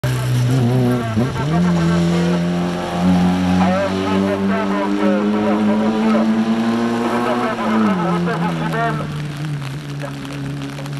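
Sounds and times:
car engine at full throttle: 0:00.0 - 0:10.9.

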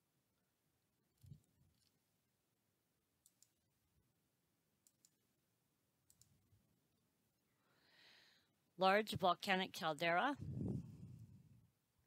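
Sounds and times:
faint computer mouse clicks: 0:03.2 - 0:03.6, 0:04.8 - 0:05.2, 0:06.1 - 0:06.4.

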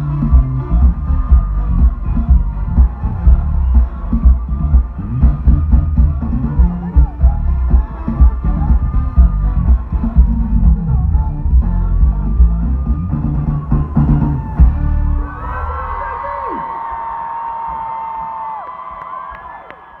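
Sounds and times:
live band playing: 0:00.0 - 0:16.3
crowd cheering and screaming: 0:00.0 - 0:20.0.

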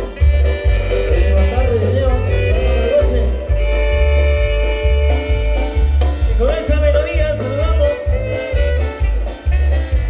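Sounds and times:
latin dance band playing: 0:00.0 - 0:10.0.

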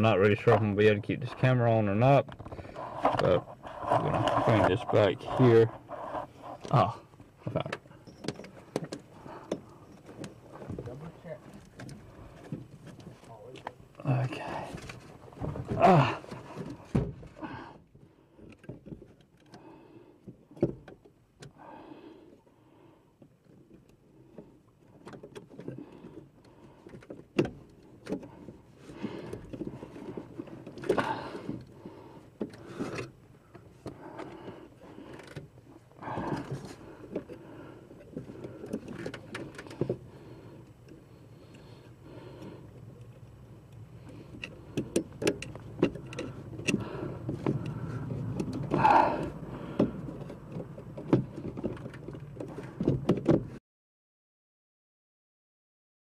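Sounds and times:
rustling handling noise: 0:02.2 - 0:07.4.

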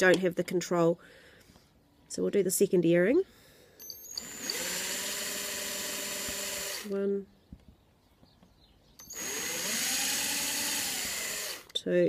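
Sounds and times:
cordless drill drilling into wood: 0:03.9 - 0:07.0, 0:09.0 - 0:11.8.

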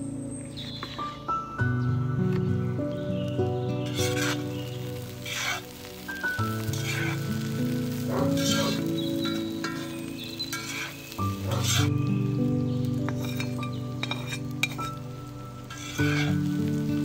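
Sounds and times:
calm instrumental music: 0:00.0 - 0:17.0
onions sizzling in oil: 0:02.9 - 0:17.0.

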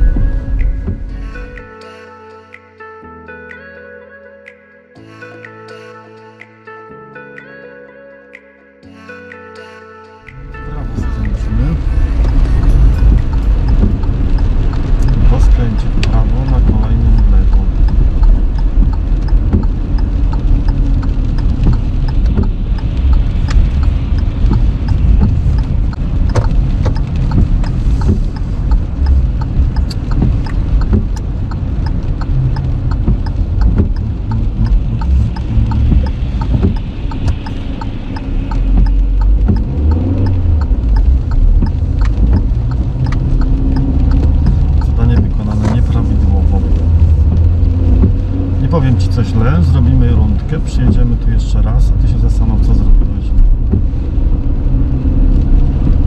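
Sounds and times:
windshield wiper strokes: 0:00.0 - 0:01.1, 0:10.9 - 0:56.0
raindrops ticking on windshield: 0:00.0 - 0:01.5, 0:10.3 - 0:56.0
tyres and engine rumble: 0:00.0 - 0:01.7, 0:10.3 - 0:56.0.

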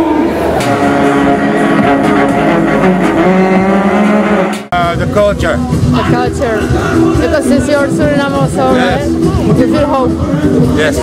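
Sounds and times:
live band music: 0:00.6 - 0:10.9.

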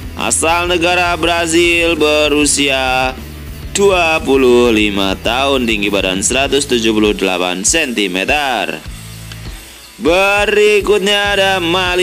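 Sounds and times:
background music with low bass: 0:00.0 - 0:12.0
person narrating: 0:03.8 - 0:08.9.

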